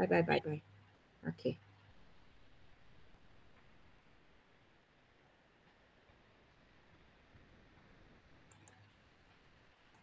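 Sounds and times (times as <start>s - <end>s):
faint computer mouse clicks: 8.4s - 8.9s.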